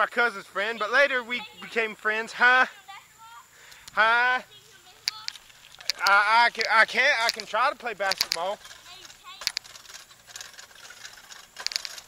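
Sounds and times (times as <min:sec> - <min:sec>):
light metallic clicks: 0:03.7 - 0:04.0, 0:04.9 - 0:10.0.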